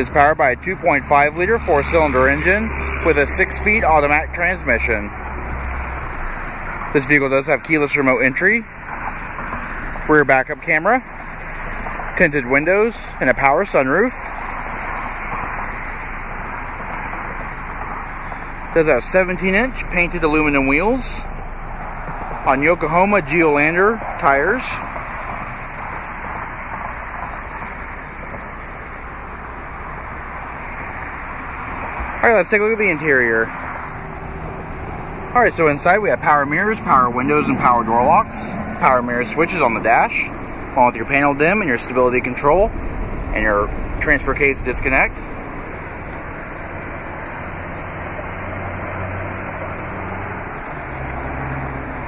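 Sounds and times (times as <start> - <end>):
even outdoor rush: 0.0 - 52.0
low rumble: 33.9 - 46.7.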